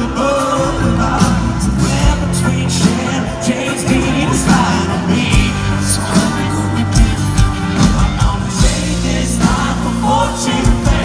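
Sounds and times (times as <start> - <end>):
live rock band playing: 0.0 - 11.0
person singing amplified: 0.0 - 11.0.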